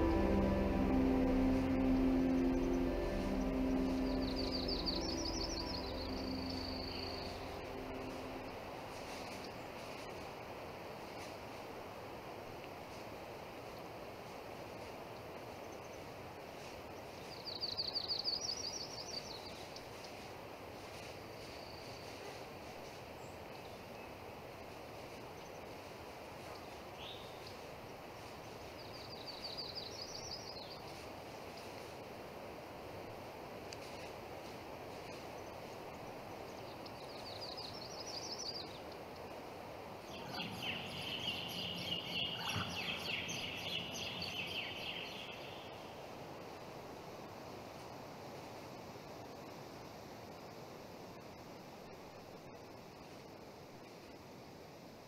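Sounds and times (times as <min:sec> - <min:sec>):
bird chirping: 0:00.0 - 0:09.7, 0:40.0 - 0:45.9
outdoor background hiss: 0:00.0 - 0:55.0.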